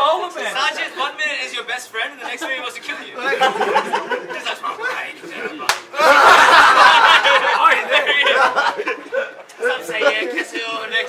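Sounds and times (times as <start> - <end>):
men laughing loudly: 2.2 - 11.0
sharp slap: 5.7 - 5.9.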